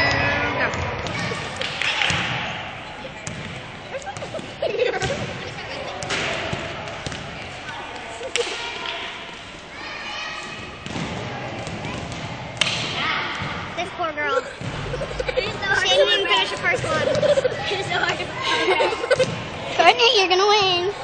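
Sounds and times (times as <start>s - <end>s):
basketball bouncing: 3.2s - 7.4s, 10.8s - 12.8s, 14.5s - 15.4s
giggling: 3.9s - 5.6s, 14.2s - 19.4s.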